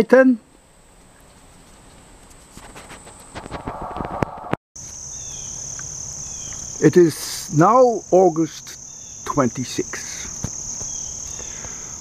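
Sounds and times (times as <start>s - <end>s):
rustling and clicks: 1.0s - 4.6s
insect chorus buzzing: 4.8s - 12.0s.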